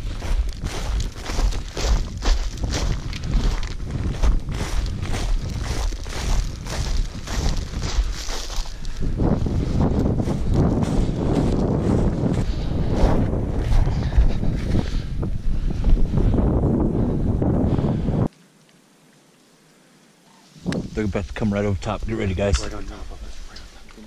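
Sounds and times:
footsteps on frosty grass: 0.0s - 16.7s
wind buffeting microphone: 0.0s - 18.3s, 20.6s - 23.8s.

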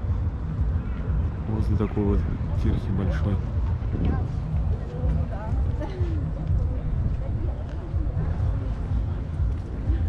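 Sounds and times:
faint voices of passers-by: 0.0s - 10.0s
wind rumble on microphone: 0.0s - 10.0s.

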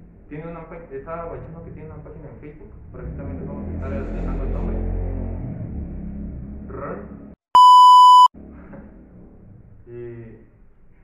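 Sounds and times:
electronic bleep tone: 7.6s - 8.3s.

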